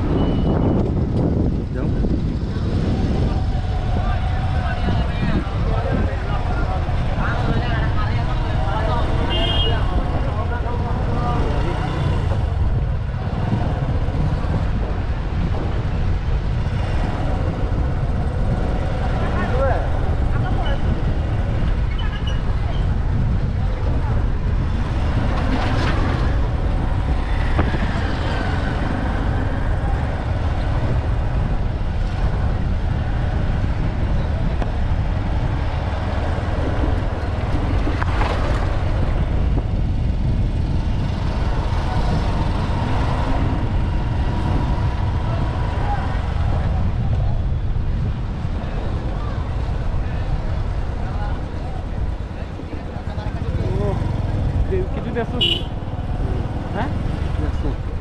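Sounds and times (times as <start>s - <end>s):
passing traffic: 0.0s - 58.0s
vehicle rumbling on dirt road: 0.0s - 58.0s.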